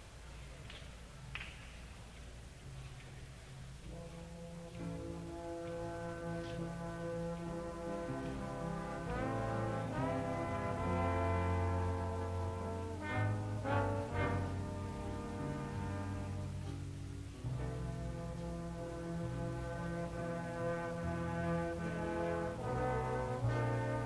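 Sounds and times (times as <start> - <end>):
brass chords: 3.8 - 24.0
jazz big band ballad: 3.8 - 24.0.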